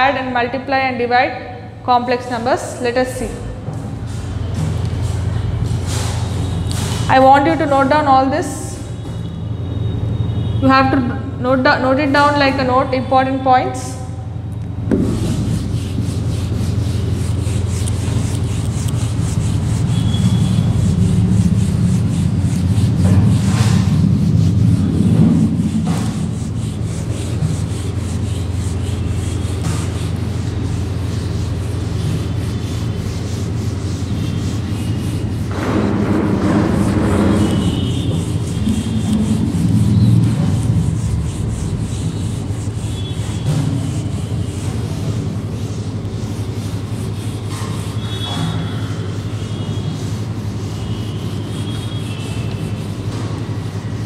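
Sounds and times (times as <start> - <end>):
eraser rubbing on whiteboard: 2.9 - 9.0, 12.1 - 54.0
steady low rumble: 14.4 - 42.8.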